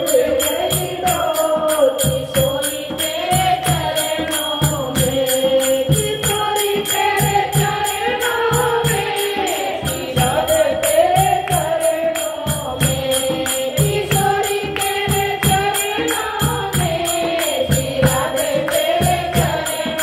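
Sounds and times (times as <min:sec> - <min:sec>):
percussion beat: 0:00.0 - 0:20.0
woman singing into microphone: 0:00.0 - 0:20.0
women singing along: 0:00.0 - 0:20.0.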